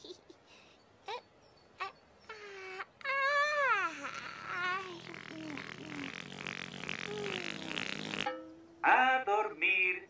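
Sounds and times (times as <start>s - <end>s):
cartoon voice wordless sound: 4.5s - 7.9s.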